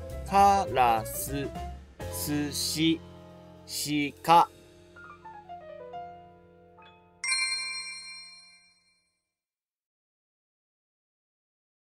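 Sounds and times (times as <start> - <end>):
bright chime ringing: 7.2 - 9.0.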